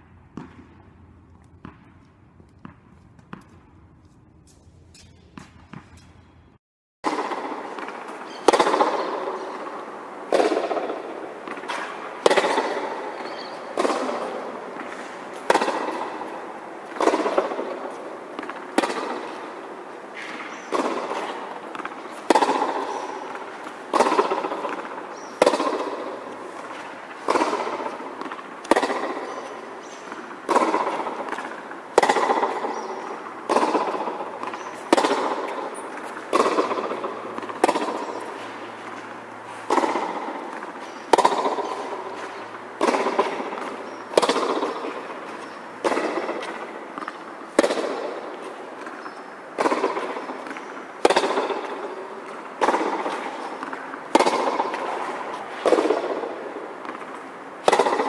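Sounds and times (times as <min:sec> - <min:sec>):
tennis ball struck by racket: 0:00.0 - 0:06.3, 0:07.0 - 0:58.0
echo under metal roof: 0:00.0 - 0:58.0.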